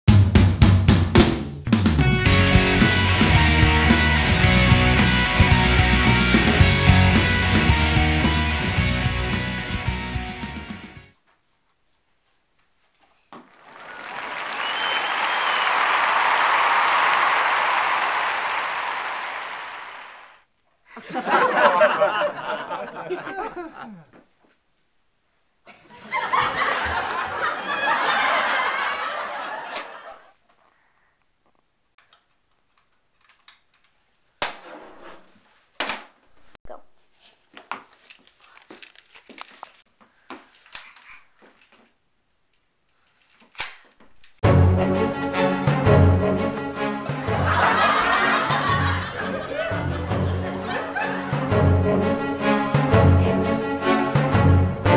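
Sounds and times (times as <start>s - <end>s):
studio audience applause: 13.4s - 20.4s, 47.0s - 51.4s
short whistle: 14.6s - 15.8s.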